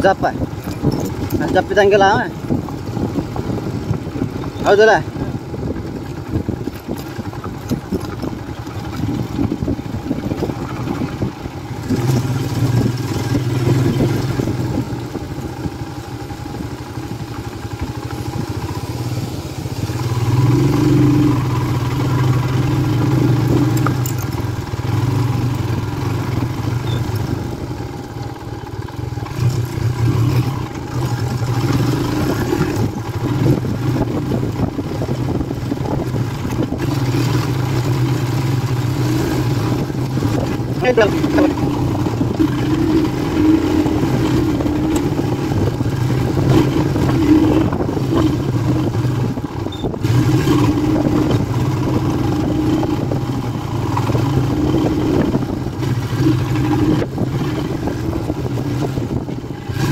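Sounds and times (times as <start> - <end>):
motorcycle engine running: 0.0 - 59.9
wind: 0.0 - 59.9.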